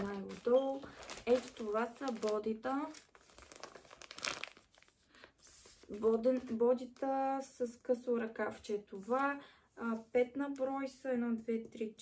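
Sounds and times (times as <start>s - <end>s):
plastic wrapping crinkling: 0.0s - 7.2s.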